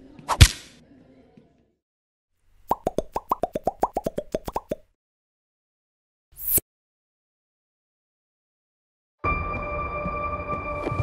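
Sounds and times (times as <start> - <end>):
cartoon pop sound effects: 2.7 - 4.9.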